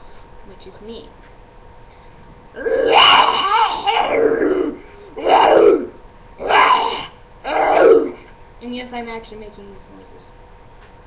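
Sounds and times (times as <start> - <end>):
girl making drawn-out demon calls: 2.6 - 8.2.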